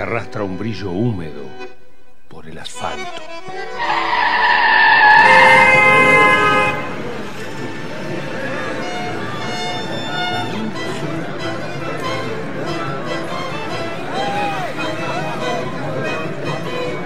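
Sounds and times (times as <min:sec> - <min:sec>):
instrumental music with violin: 0:00.0 - 0:17.0
loud sustained horn-like tones: 0:03.7 - 0:08.2.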